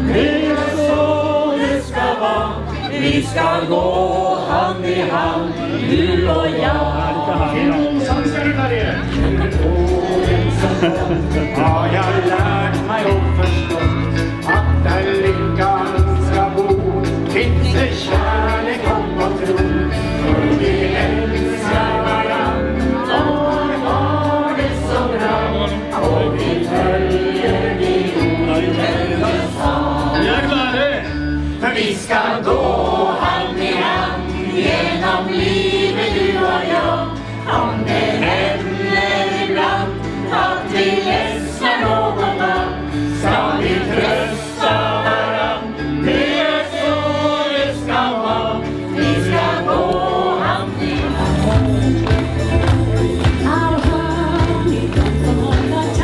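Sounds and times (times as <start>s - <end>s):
backing music with bass line: 0.0s - 56.0s
crowd singing together: 0.0s - 56.0s.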